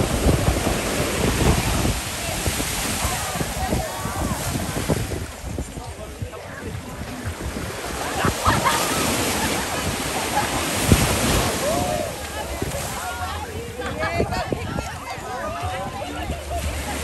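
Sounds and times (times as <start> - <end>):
faint voices: 0.0 - 17.0
ocean surf on shore: 0.0 - 17.0
wind on microphone: 0.0 - 17.0.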